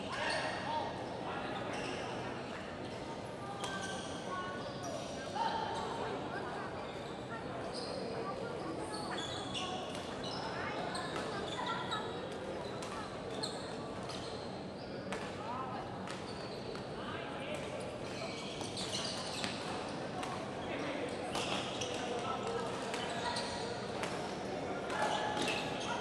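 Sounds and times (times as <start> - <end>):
murmur of voices: 0.0 - 26.0
shoes squeaking on court floor: 8.6 - 12.8, 17.7 - 20.0, 20.6 - 26.0.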